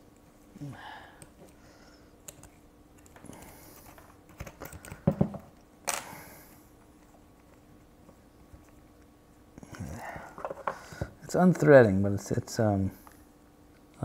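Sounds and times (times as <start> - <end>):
small clicks and knocks of handled parts: 2.2 - 6.2, 10.2 - 11.7.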